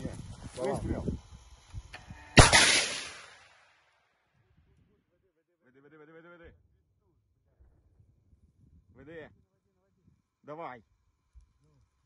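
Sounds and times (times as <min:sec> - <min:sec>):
missile launch blast: 0:02.4 - 0:03.6.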